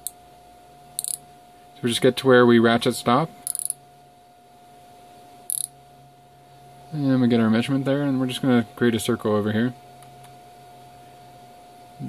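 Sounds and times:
faint steady hum: 0.0 - 12.0
micrometer ratchet clicking: 1.0 - 1.2, 3.4 - 3.8, 5.5 - 5.7.

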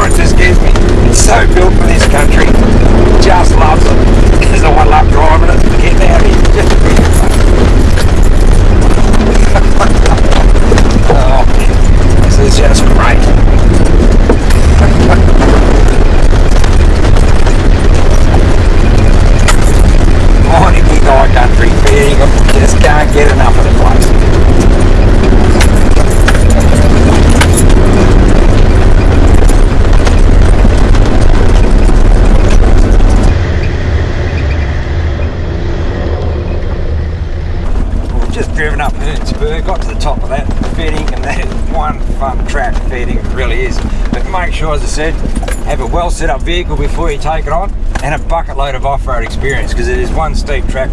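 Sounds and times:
wind on microphone: 0.0 - 44.3
engine rumble: 0.0 - 50.9.

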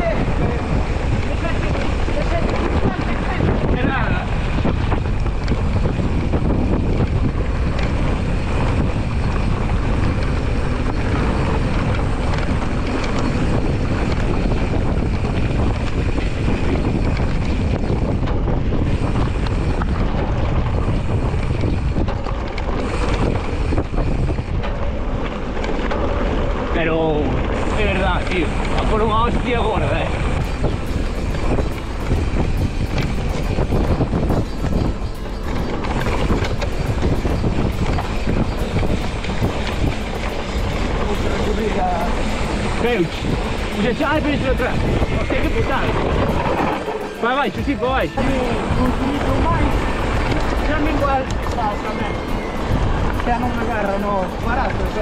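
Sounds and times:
tyres rolling on dirt trail: 0.0 - 55.0
wind on microphone: 0.0 - 55.0.

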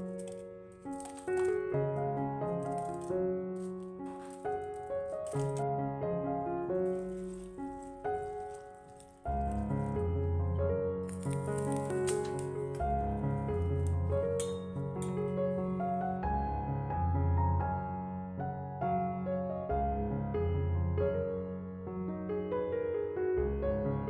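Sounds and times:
scissors snipping dried chilies: 0.0 - 5.6, 6.8 - 10.1, 11.1 - 15.4
gentle piano music: 0.0 - 24.0.

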